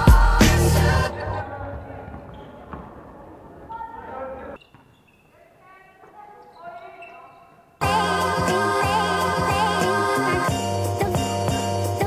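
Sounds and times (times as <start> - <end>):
loud backing music: 0.0 - 1.4, 7.8 - 12.0
players' voices: 0.6 - 4.6.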